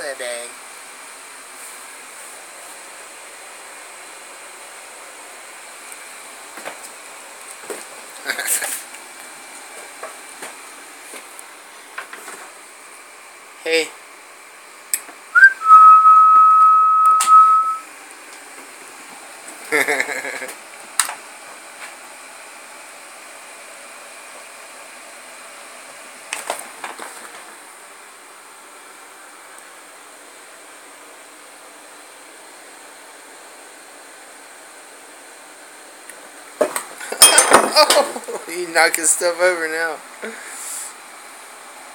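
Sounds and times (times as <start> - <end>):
loud whistled note: 15.4 - 17.9
thin high whine: 15.4 - 17.9.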